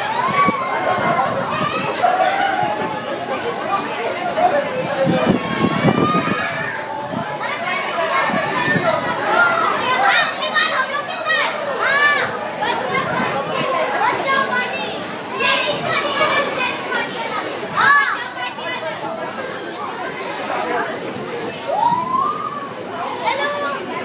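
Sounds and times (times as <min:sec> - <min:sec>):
children chattering: 0:00.0 - 0:24.0.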